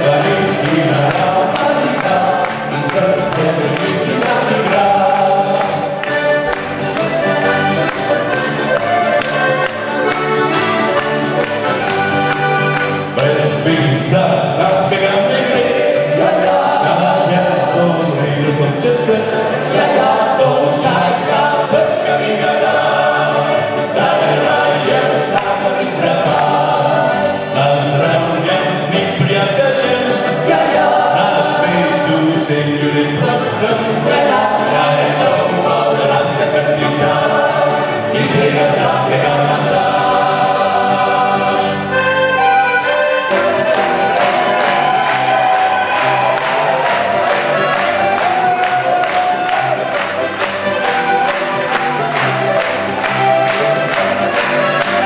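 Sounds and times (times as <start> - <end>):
male choir singing in harmony: 0.0 - 6.6, 12.5 - 55.0
button accordion melody: 0.0 - 55.0
strummed acoustic guitar: 0.0 - 55.0.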